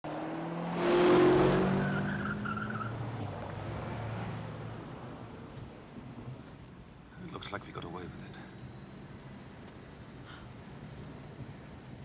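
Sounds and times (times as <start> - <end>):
tyre squeal: 1.6 - 3.0.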